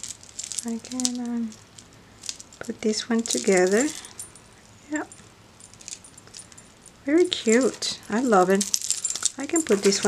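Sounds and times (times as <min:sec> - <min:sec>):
beads and clasp jangling: 0:00.0 - 0:10.0.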